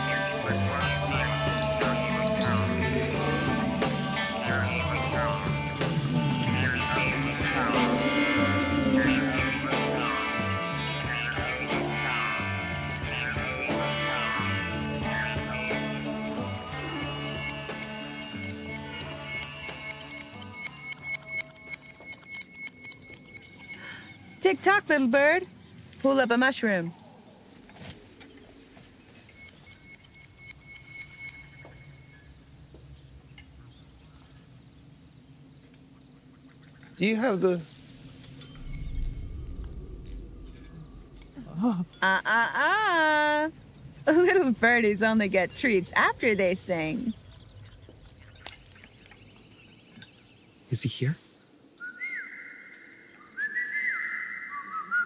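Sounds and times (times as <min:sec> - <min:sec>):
person whistling bird-like calls: 0:51.8 - 0:55.0.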